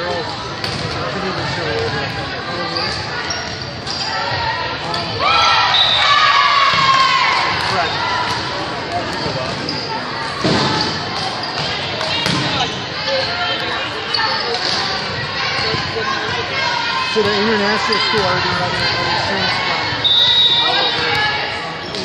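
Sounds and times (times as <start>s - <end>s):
sneakers squeaking on hardwood: 9.0s - 16.0s
volleyball hits: 10.4s - 13.7s.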